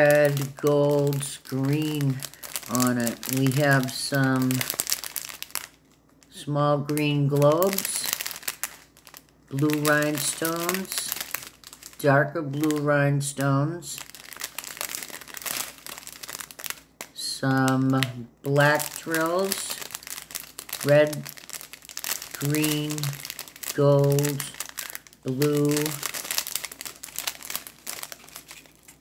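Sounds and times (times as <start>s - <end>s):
plastic bags crinkling: 0.0s - 29.0s.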